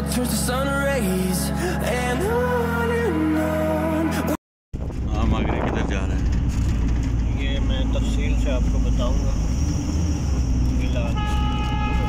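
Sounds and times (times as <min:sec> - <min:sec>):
vehicle engine and road rumble: 0:04.8 - 0:12.0.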